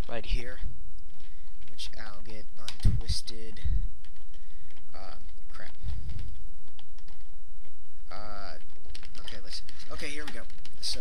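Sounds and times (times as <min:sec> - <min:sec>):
steady crackling hiss: 0:00.0 - 0:11.0.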